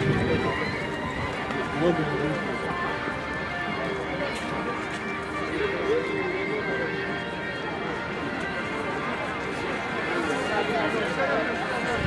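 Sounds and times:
crowd chatter and calls: 0:00.0 - 0:12.0.

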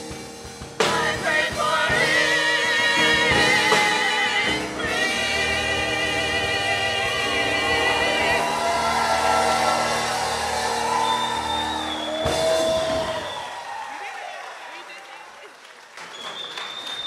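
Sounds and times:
choir holding chord: 0:00.8 - 0:12.4
audience applause and cheering: 0:06.2 - 0:17.0
long high whistle: 0:08.4 - 0:13.7, 0:16.1 - 0:17.0.

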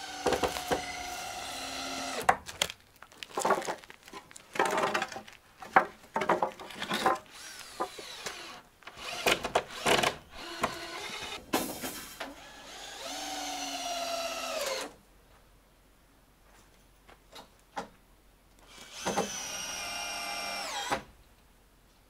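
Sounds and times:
cordless drill running: 0:00.0 - 0:02.3, 0:07.3 - 0:11.4, 0:12.4 - 0:14.9, 0:18.7 - 0:20.9
wooden boards knocking and clattering: 0:04.6 - 0:07.2.

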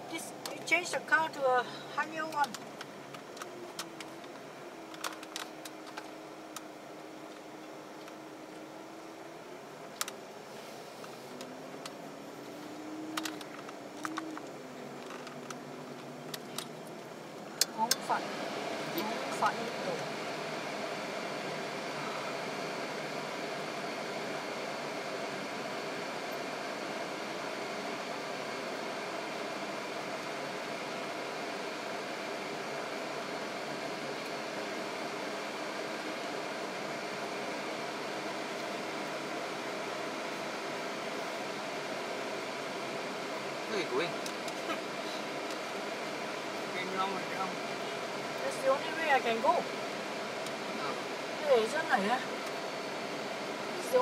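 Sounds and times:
car cabin hum: 0:00.0 - 0:28.0.

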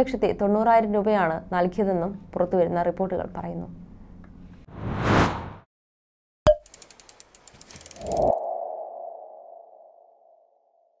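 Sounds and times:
rapid ticks: 0:06.6 - 0:08.4.

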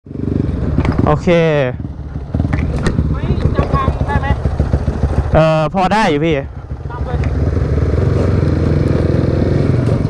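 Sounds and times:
motorcycle engine running: 0:00.1 - 0:10.0
man speaking: 0:05.3 - 0:06.5.

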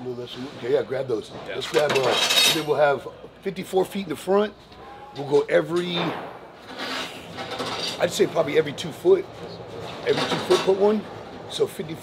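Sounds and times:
rough rubbing scraping: 0:06.6 - 0:08.1.

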